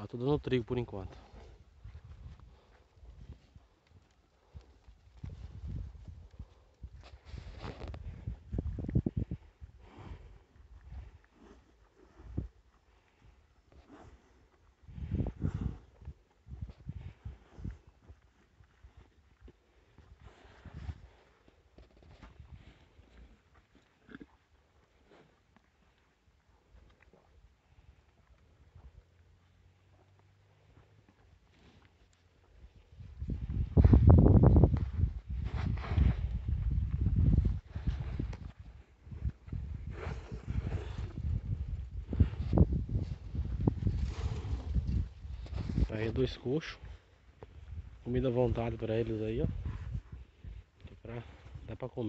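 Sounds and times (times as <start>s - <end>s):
cattle chewing feed: 1.1s - 45.9s
wind buffeting microphone: 1.4s - 3.6s, 5.0s - 11.2s, 14.8s - 17.9s, 32.9s - 46.3s, 47.5s - 51.7s
cattle eating from a trough: 37.3s - 45.8s.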